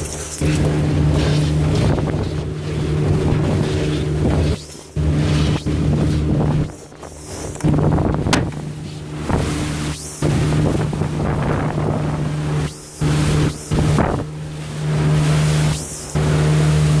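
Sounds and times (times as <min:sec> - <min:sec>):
outboard motor running: 0:00.0 - 0:17.0
rushing water: 0:00.0 - 0:17.0
wind on microphone: 0:00.0 - 0:17.0.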